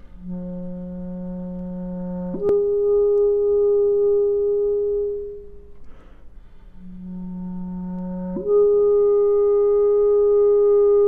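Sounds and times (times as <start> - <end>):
clarinet holding soft note: 0.0 - 5.7, 6.8 - 11.0.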